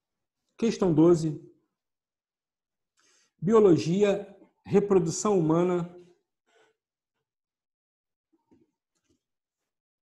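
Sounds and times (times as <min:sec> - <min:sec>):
man speaking: 0:00.6 - 0:01.5, 0:03.4 - 0:06.1.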